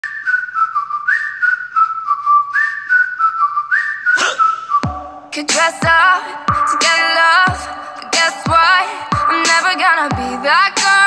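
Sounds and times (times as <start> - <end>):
whistled melody: 0.0 - 5.3.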